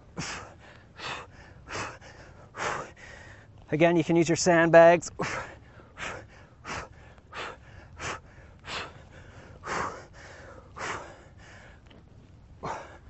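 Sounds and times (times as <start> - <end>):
man breathing hard: 0.0 - 3.6, 5.1 - 11.9, 12.6 - 13.0.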